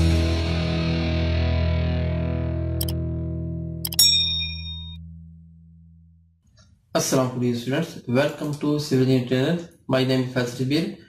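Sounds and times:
distorted electric guitar chord: 0:00.0 - 0:03.8.

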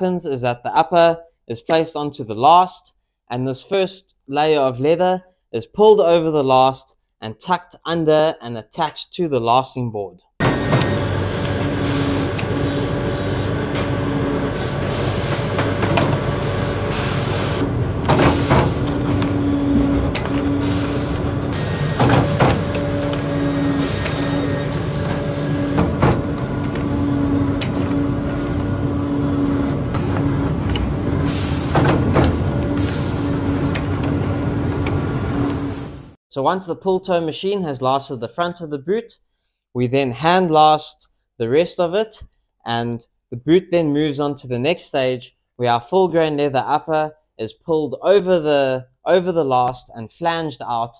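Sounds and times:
machine hum with pitched tone: 0:10.4 - 0:36.2
short sharp machine hisses: 0:10.6 - 0:13.8, 0:14.5 - 0:15.6, 0:16.4 - 0:17.6, 0:20.5 - 0:25.8, 0:31.2 - 0:31.9, 0:32.7 - 0:33.4.

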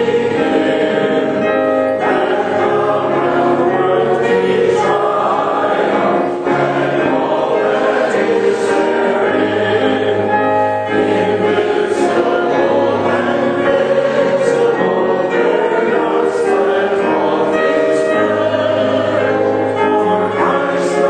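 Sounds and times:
congregation singing a hymn: 0:00.0 - 0:21.0
piano accompaniment: 0:00.0 - 0:21.0.

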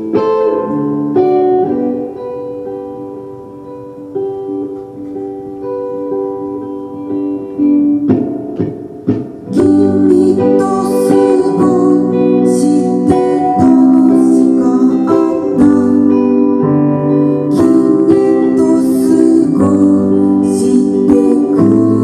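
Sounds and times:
electric guitar playing chords: 0:00.0 - 0:22.0.

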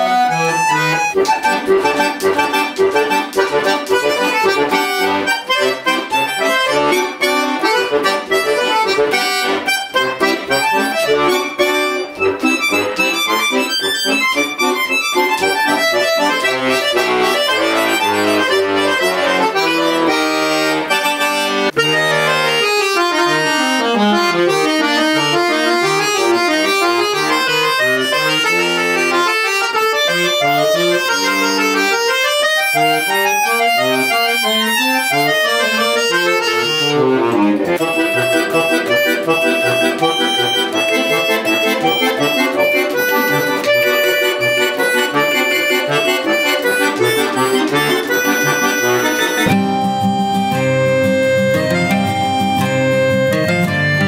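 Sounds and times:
button accordion playing: 0:00.0 - 0:54.0
acoustic guitar: 0:45.3 - 0:54.0.

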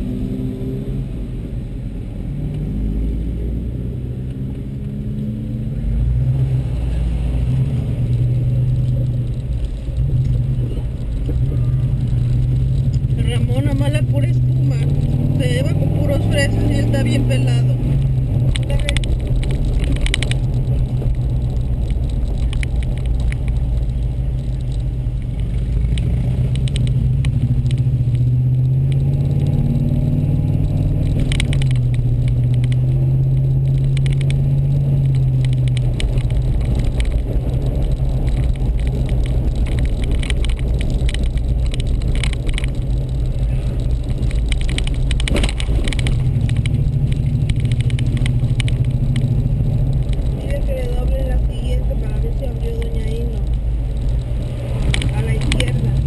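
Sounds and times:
car engine and road drone: 0:00.0 - 0:56.0.

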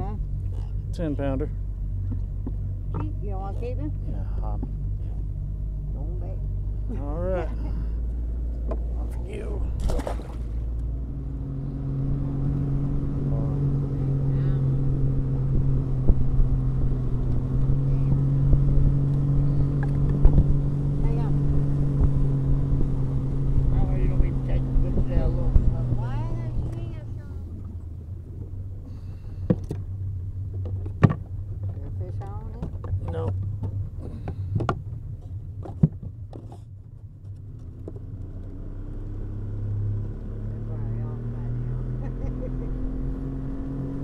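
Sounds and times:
boat motor running: 0:00.0 - 0:44.0.

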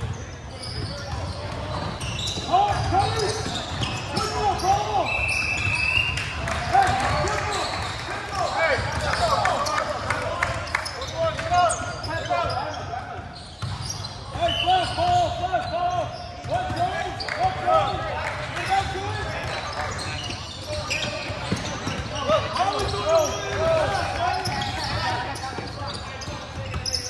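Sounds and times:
sneakers squeaking: 0:00.0 - 0:27.0
players calling out: 0:00.1 - 0:27.0.

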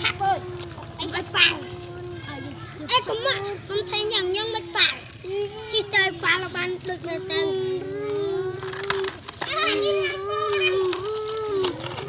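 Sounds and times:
child imitating truck engine: 0:00.0 - 0:12.0.

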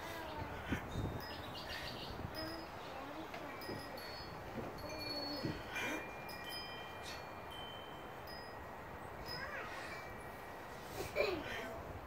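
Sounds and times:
chimes ringing: 0:01.1 - 0:10.9.

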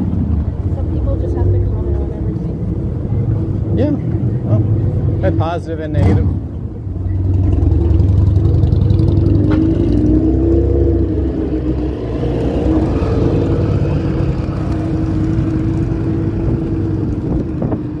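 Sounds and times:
vehicle engine rumbling: 0:00.0 - 0:18.0.

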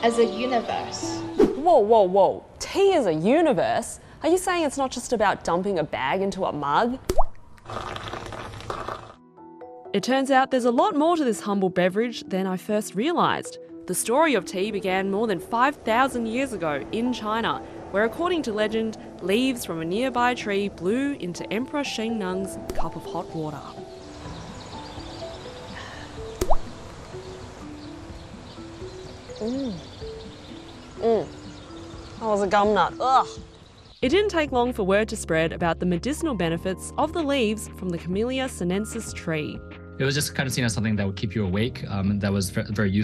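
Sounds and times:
background music: 0:00.0 - 0:07.6, 0:08.9 - 0:43.0
tea bag plopping into water: 0:07.1 - 0:09.2, 0:26.4 - 0:26.8
nut plopping into tea: 0:26.4 - 0:26.8.

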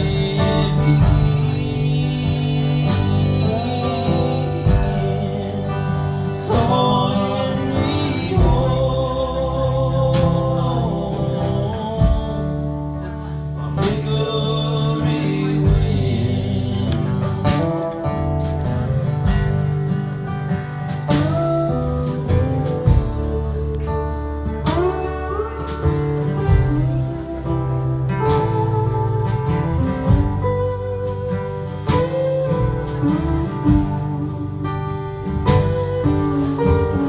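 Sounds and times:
lead guitar with bending notes: 0:00.0 - 0:37.0
live band playing: 0:00.0 - 0:37.0.

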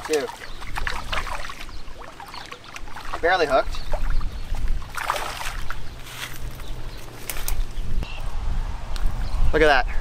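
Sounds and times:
fish splashing in water: 0:00.0 - 0:05.9
wind rumbling on microphone: 0:00.0 - 0:10.0.

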